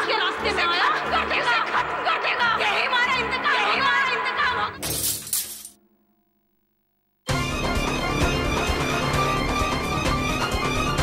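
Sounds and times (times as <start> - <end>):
glass shattering: 4.8 - 5.8.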